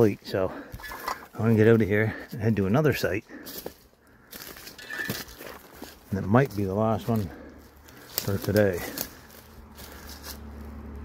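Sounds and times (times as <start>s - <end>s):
brush rustling: 0.0s - 11.0s
footsteps crunching through dry leaves: 0.0s - 11.0s.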